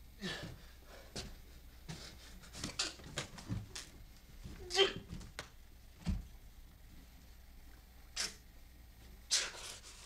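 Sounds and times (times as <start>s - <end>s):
man gasping: 0.2s - 1.2s.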